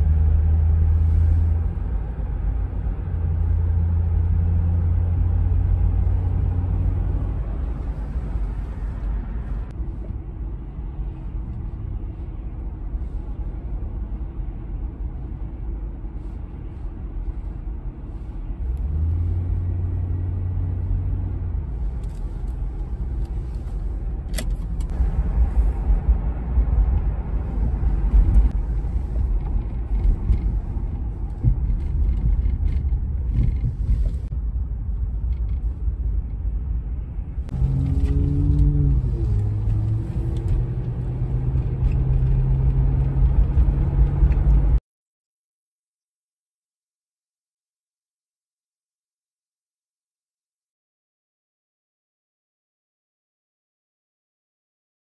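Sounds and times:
road and engine rumble: 0.0 - 44.8.

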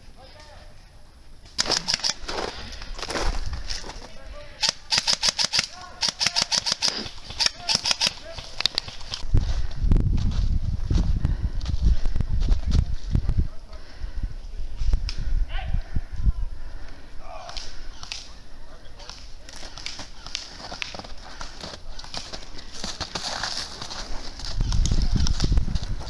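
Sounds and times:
airsoft guns firing: 1.6 - 2.4, 4.6 - 9.2.

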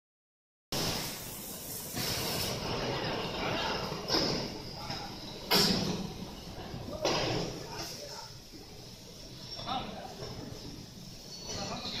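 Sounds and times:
steady background noise: 0.8 - 12.0.

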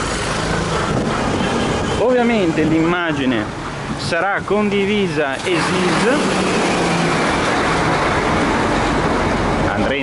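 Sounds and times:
truck diesel engine passing: 0.0 - 4.0, 4.9 - 10.0.

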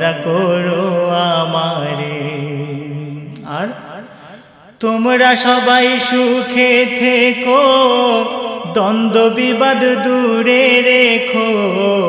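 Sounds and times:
man singing: 0.0 - 12.0.

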